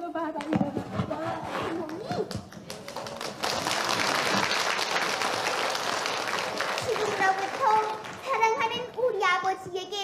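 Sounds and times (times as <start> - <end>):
audience applauding: 2.5 - 8.6.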